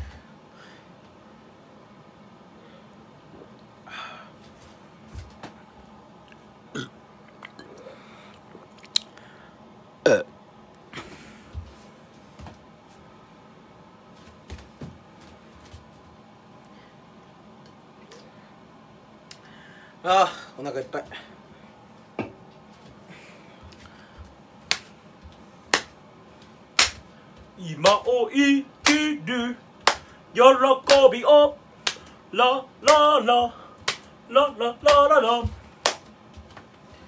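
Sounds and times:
man burping: 6.7s - 8.7s, 10.0s - 10.3s.

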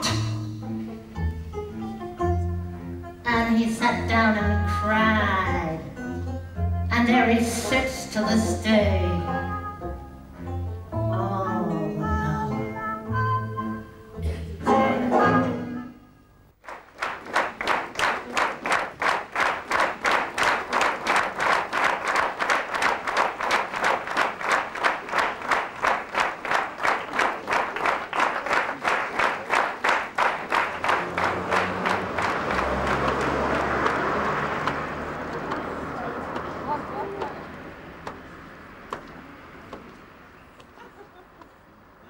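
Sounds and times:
audience clapping in unison: 16.6s - 40.8s.

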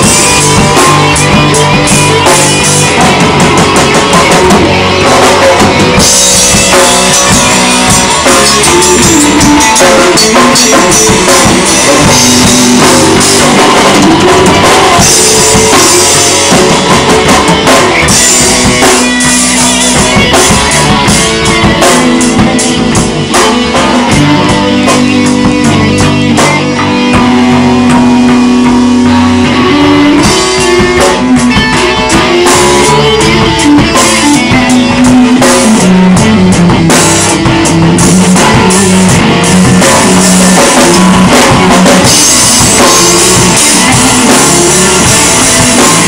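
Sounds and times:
loud rock music: 0.0s - 46.0s.

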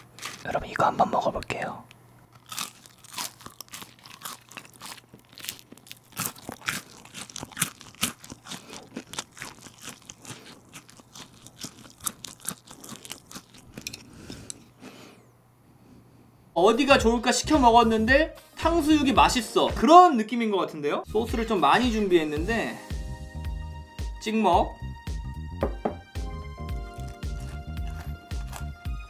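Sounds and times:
crunching and chewing fried food: 0.0s - 0.6s, 2.2s - 14.8s, 26.7s - 29.0s.

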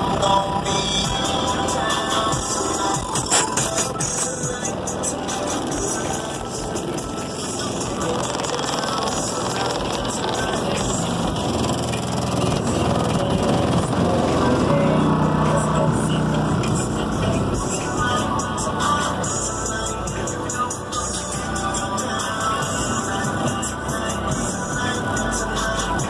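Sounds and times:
loud car stereo music: 0.0s - 26.0s.

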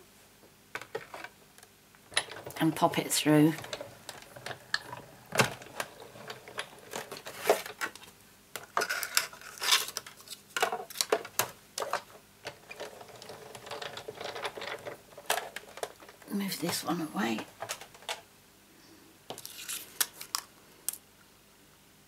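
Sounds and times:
plastic plates clicking and scraping: 2.1s - 16.8s.

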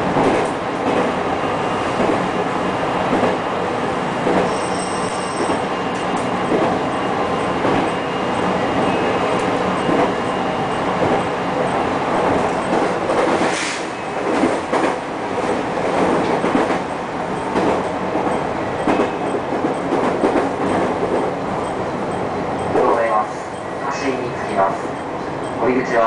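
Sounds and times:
train running rumble: 0.0s - 26.0s.

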